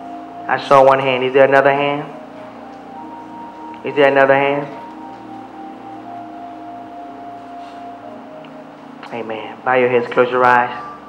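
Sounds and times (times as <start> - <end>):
soft sustained chords: 0.0 - 11.0.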